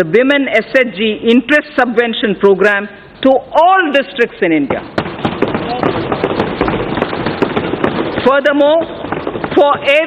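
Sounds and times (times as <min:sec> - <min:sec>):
hands thumping wooden desks: 0:04.7 - 0:10.0
voices: 0:08.2 - 0:09.0, 0:09.6 - 0:10.0.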